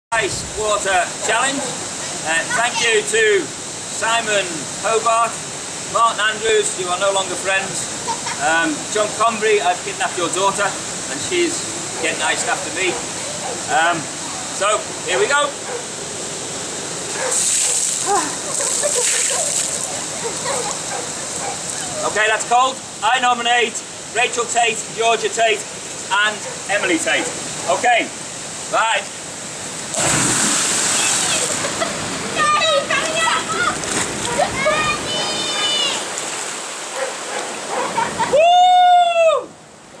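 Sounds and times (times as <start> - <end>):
stream rushing: 0.1 - 40.0
water splashing pour: 17.3 - 20.1, 29.9 - 31.7
voices: 30.8 - 36.2
loud high held cry: 38.2 - 39.6.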